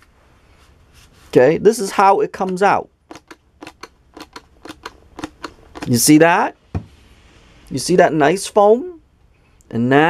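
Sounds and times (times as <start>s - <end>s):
pump dispenser clicking: 3.1s - 6.0s.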